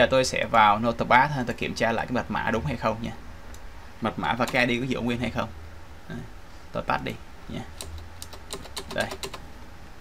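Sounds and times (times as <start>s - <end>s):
computer keyboard keys clicking: 7.8s - 9.4s.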